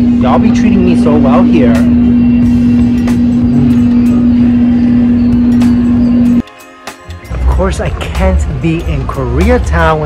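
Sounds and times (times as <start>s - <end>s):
low machine hum: 0.0s - 6.4s.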